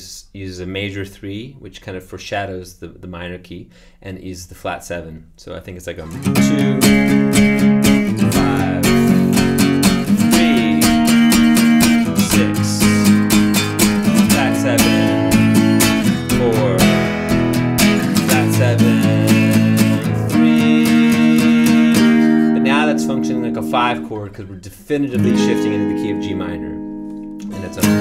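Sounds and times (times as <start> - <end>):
acoustic guitar strumming chords: 6.0 - 24.4, 25.0 - 28.0.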